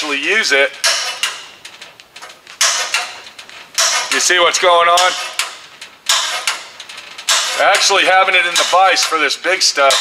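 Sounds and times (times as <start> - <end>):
metal tube scraping and creaking: 0.0 - 10.0.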